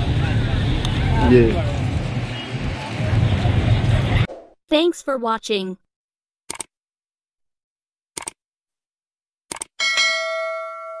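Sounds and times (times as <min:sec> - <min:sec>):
notification bell chime: 0:09.8 - 0:11.0.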